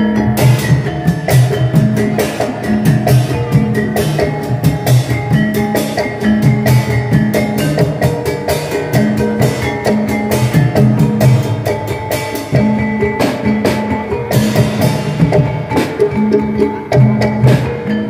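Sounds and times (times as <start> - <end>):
tuned metal percussion ringing: 0.0 - 18.0.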